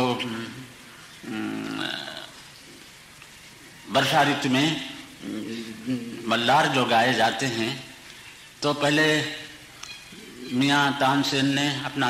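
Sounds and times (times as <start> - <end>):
man's wordless vocal sound: 4.6 - 6.6.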